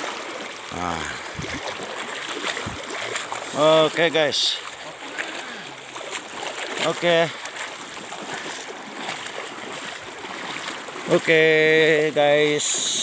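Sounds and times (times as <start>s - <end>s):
floodwater sloshing and splashing: 0.0s - 13.0s.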